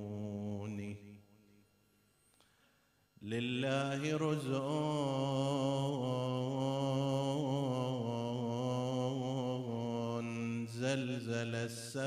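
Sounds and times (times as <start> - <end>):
man chanting through a microphone: 0.0 - 1.2, 3.2 - 12.0.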